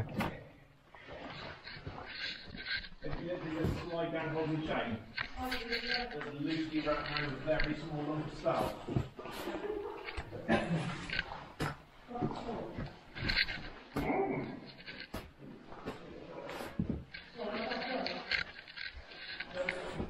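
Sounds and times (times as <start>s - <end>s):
chain clinking on rock: 1.6s - 3.2s, 5.1s - 7.8s, 13.2s - 15.2s, 17.1s - 19.9s.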